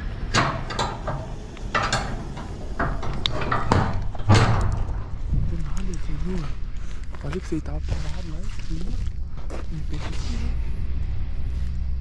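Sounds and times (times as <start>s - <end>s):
metal gate knocks and rattles: 0.0s - 5.5s
steady low rumble: 0.0s - 12.0s.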